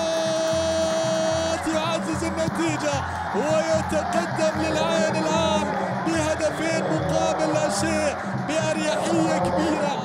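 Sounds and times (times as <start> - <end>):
crowd noise: 0.0 - 10.0
crowd singing a chant: 2.4 - 10.0.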